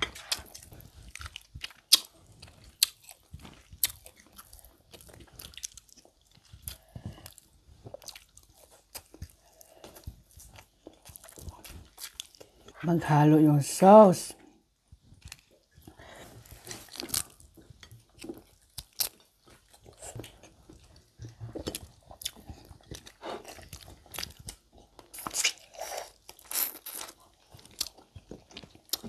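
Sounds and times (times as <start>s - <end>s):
people biting and chewing: 0.0s - 12.8s, 14.4s - 29.0s.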